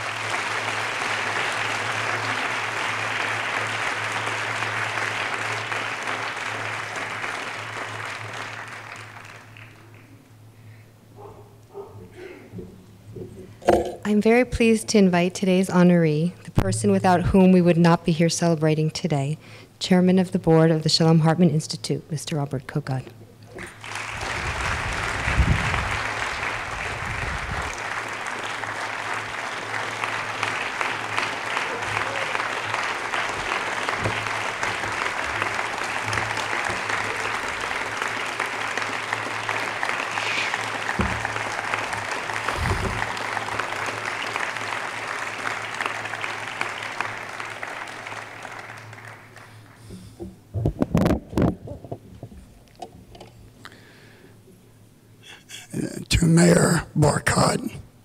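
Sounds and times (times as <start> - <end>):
audience applauding: 0.0 - 10.3, 23.5 - 50.0.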